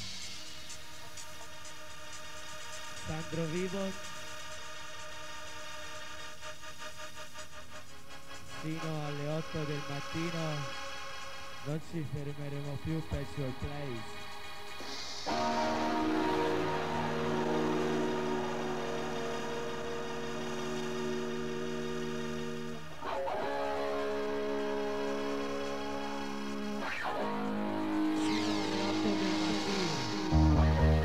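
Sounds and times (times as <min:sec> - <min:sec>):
low pulsing dance beat: 0:00.0 - 0:22.9, 0:24.2 - 0:31.0
held synth chords: 0:00.0 - 0:31.0.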